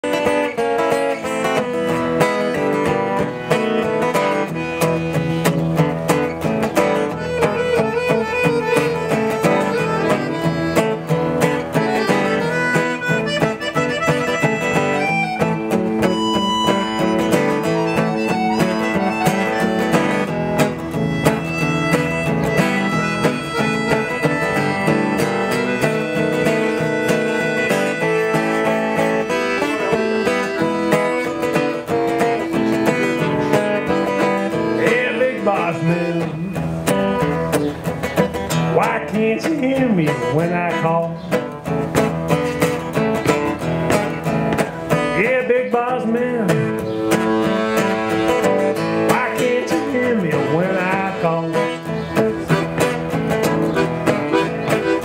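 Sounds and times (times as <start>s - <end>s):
acoustic guitar strumming: 0.0s - 55.0s
piano accordion: 1.1s - 37.2s, 47.0s - 49.2s, 50.9s - 55.0s.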